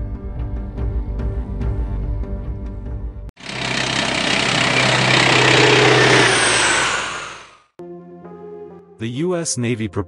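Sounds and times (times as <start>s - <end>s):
helicopter turbine and rotor: 3.4s - 7.7s.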